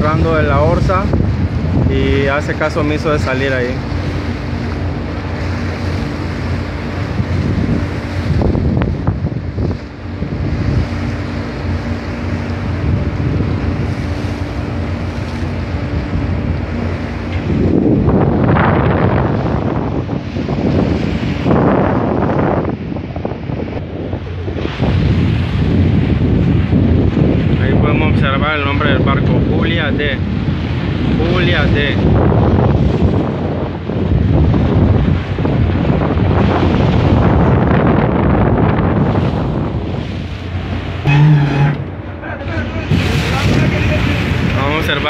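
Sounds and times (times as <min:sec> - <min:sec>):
boat engine humming: 0:00.0 - 0:27.7, 0:28.4 - 0:31.2, 0:32.4 - 0:45.0
sea washing: 0:00.0 - 0:45.0
wind buffeting microphone: 0:00.0 - 0:45.0.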